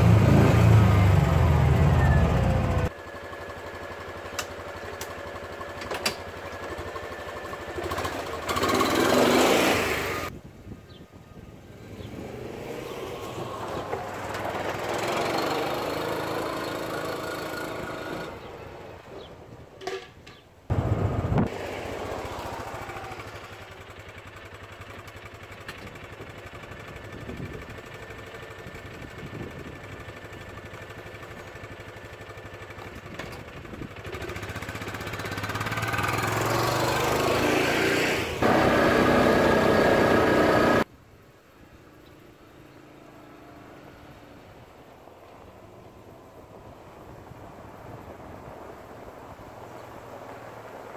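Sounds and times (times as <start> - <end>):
small utility vehicle engine running: 0.0 - 10.3, 11.9 - 19.2, 20.7 - 40.9.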